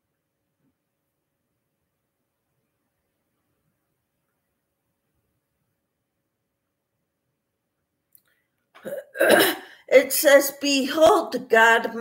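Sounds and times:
woman clearing throat: 8.8s - 9.7s
woman speaking: 9.9s - 12.0s.

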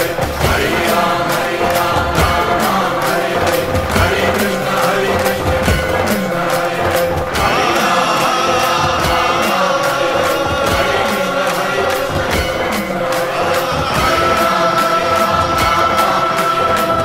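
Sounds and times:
group singing a devotional chant: 0.0s - 17.0s
steady beat of strikes: 0.0s - 17.0s.

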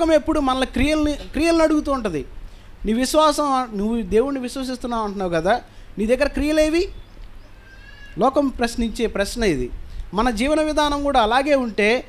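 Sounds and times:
man preaching through microphone: 0.0s - 2.3s, 2.9s - 6.9s, 8.2s - 12.0s.

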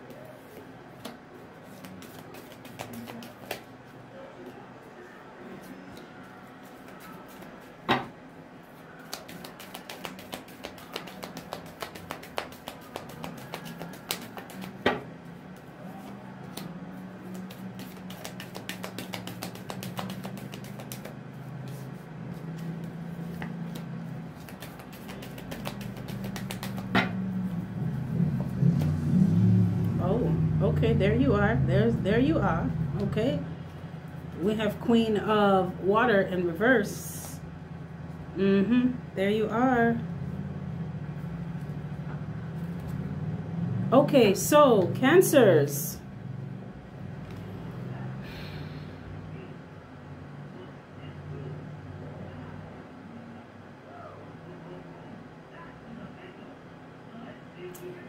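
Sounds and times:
low steady hum: 0.0s - 58.0s
cards being shuffled: 0.1s - 3.7s, 6.7s - 7.7s, 9.0s - 15.0s, 15.9s - 29.0s.

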